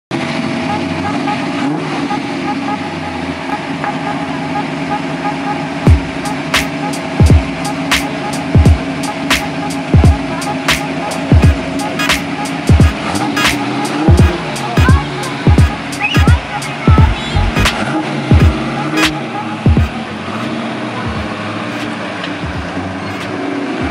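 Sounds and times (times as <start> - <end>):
car engine running: 0.1 - 23.9
music with kick-drum beat: 5.9 - 20.0, 21.1 - 21.4, 22.4 - 23.9.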